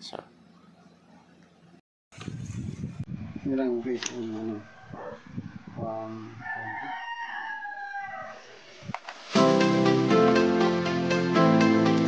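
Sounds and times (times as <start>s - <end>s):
rooster crowing: 4.2s - 8.6s.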